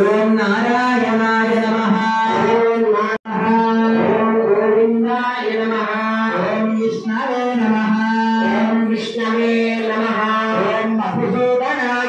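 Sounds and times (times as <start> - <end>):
person chanting in monotone: 0.0 - 12.0.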